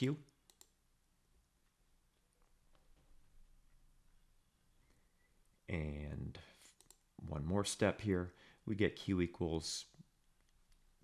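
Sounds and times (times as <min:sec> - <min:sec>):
person speaking: 0:00.0 - 0:00.5, 0:05.5 - 0:10.2
computer control clicks: 0:00.4 - 0:00.8.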